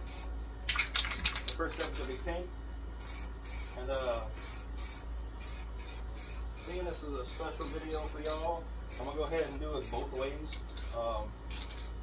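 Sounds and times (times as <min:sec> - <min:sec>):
spray paint can hissing: 0:00.0 - 0:00.3, 0:03.0 - 0:10.5.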